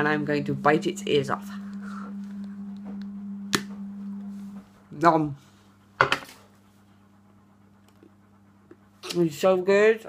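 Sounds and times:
steady low hum: 0.0s - 9.1s.

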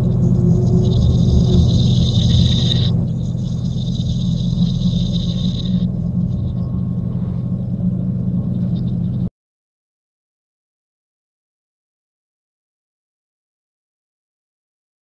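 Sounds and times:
high ringing tone: 0.0s - 9.1s
low drone: 0.0s - 9.3s.

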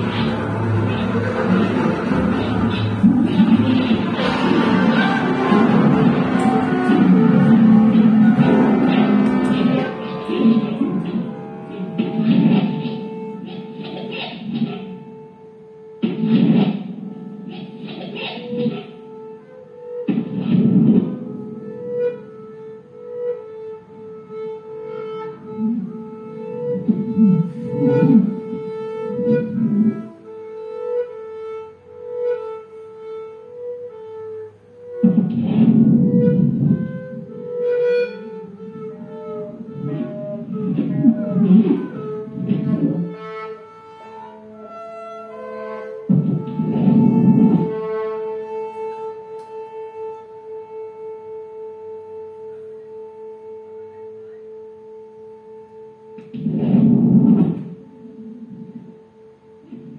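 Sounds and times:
loud noisy bursts: 0.0s - 21.5s.

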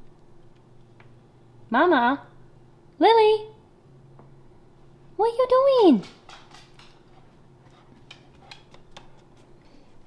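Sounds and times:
faint steady hum: 0.0s - 10.0s
dog claws clicking: 6.0s - 7.2s, 8.0s - 9.3s.

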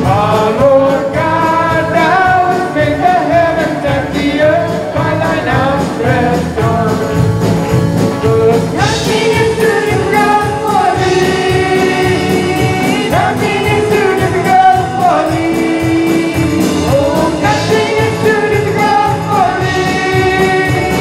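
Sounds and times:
electric guitars: 0.0s - 21.0s
group singing gospel song: 0.0s - 21.0s
steady beat: 0.0s - 21.0s.

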